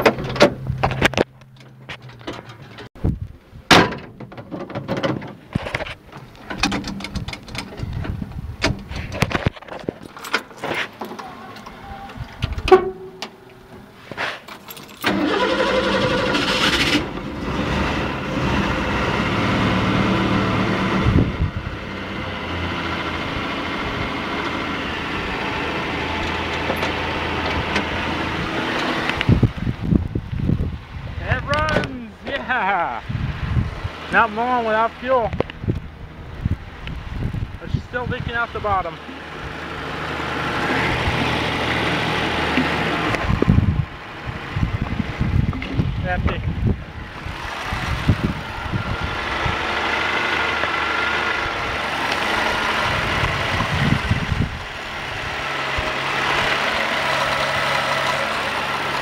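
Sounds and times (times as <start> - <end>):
car engine starting and running: 0.0 - 32.5, 33.1 - 59.0
starter clicks and knocks: 3.7 - 11.7.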